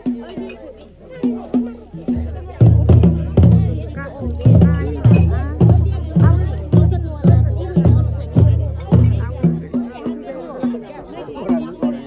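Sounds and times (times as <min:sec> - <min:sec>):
drum beating steady rhythm: 0:00.0 - 0:12.0
people talking: 0:00.0 - 0:12.0.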